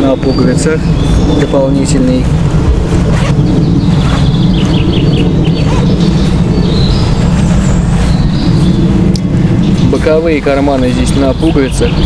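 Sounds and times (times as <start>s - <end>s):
bird chirping: 0.0s - 12.0s
steady low rumble: 0.0s - 12.0s.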